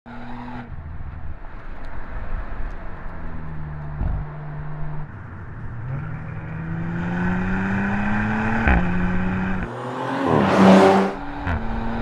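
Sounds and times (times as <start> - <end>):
car engine accelerating: 0.1 - 12.0.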